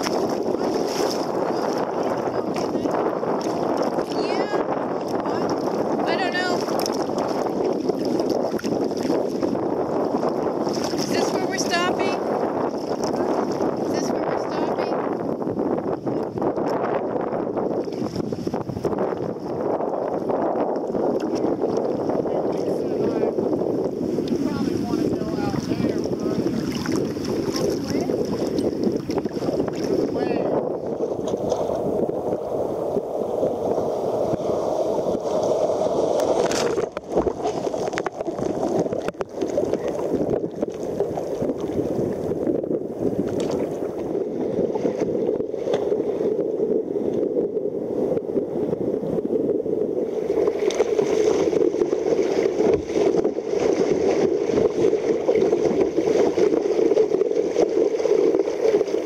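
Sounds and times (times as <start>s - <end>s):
water slapping against kayak hull: 0.0s - 47.4s, 50.0s - 59.0s
wind buffeting microphone: 0.0s - 59.0s.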